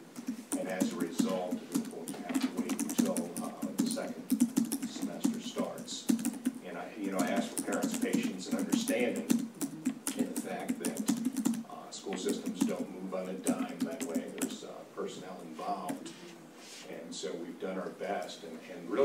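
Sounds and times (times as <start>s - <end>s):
computer keyboard typing: 0.2s - 11.6s, 12.2s - 14.6s
person talking: 0.5s - 17.1s.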